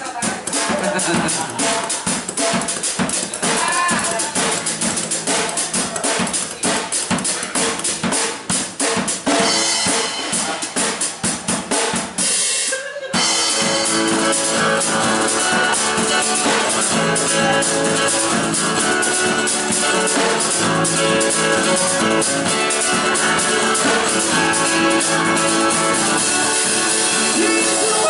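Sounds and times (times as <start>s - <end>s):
acoustic band playing: 0.0s - 28.0s
drum kit played with sticks: 0.0s - 28.0s
acoustic guitar: 13.1s - 28.0s.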